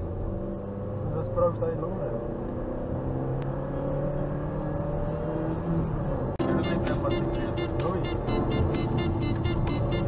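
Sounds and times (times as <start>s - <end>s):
car engine accelerating: 0.0s - 10.0s
road noise: 0.0s - 10.0s.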